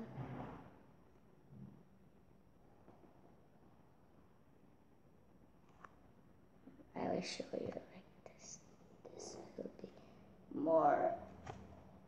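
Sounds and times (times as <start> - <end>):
faint whispering: 7.2 - 10.2.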